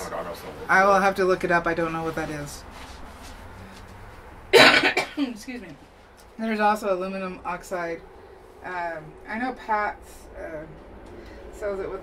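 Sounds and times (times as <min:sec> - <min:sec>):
person coughing: 0:04.6 - 0:05.4.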